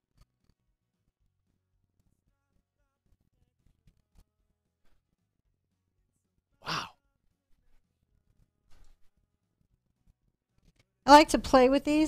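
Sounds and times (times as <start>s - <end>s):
breathy exhalation saying wow: 6.6s - 7.0s.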